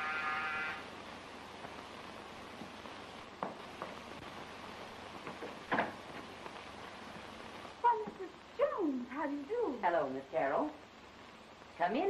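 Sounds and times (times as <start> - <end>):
electric door buzzer: 0.0 - 0.9
film soundtrack hiss: 0.0 - 12.0.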